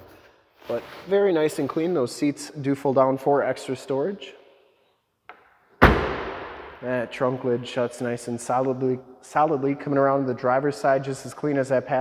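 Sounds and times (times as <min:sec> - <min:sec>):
car trunk lid slamming: 0:05.8 - 0:06.8.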